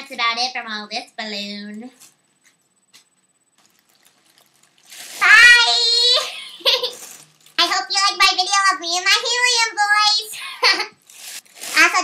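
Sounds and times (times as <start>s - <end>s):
faint hiss: 0.0s - 8.5s
breathy helium inhale: 11.0s - 11.6s.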